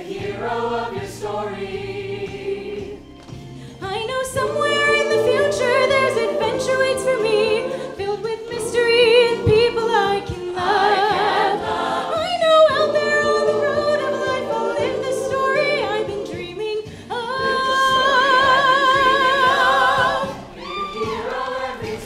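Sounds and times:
choir singing in harmony: 0.0s - 3.1s, 3.9s - 22.0s.

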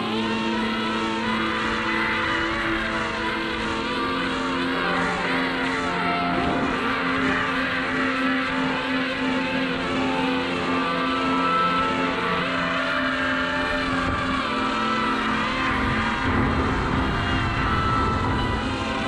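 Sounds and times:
drone propellers whining: 0.0s - 19.0s.

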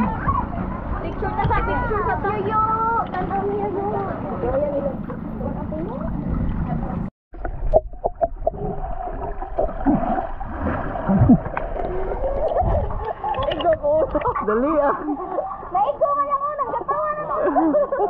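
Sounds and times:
voices above water: 0.0s - 7.1s, 11.0s - 18.0s
water noise: 0.0s - 18.0s
muffled underwater gurgling: 4.3s - 14.5s.

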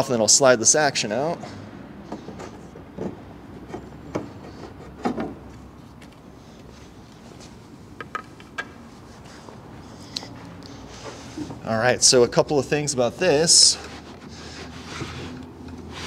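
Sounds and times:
light wooden knocks and rubbing: 2.1s - 6.7s, 13.8s - 16.0s.

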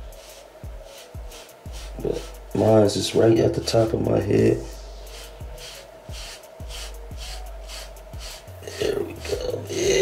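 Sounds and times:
hairbrush rasping through hair: 0.0s - 3.9s, 4.7s - 10.0s
brush bumping head: 0.0s - 10.0s.

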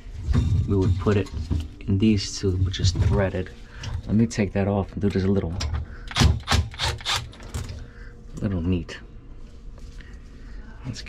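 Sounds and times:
impact driver rattling bursts: 6.1s - 7.3s.

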